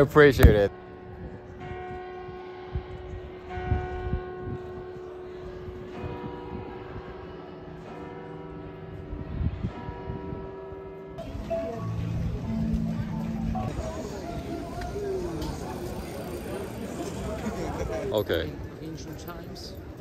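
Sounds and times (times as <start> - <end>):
church bells tolling: 0.7 - 14.7.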